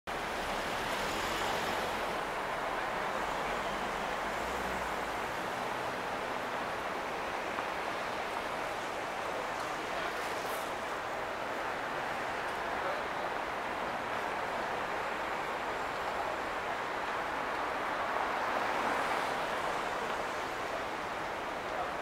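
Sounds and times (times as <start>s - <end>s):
passing cars and tyres: 0.1s - 22.0s.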